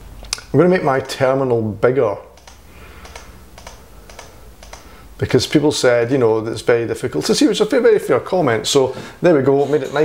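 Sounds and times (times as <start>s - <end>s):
low room noise: 0.0s - 10.0s
mouse and keyboard clicks: 2.4s - 4.9s.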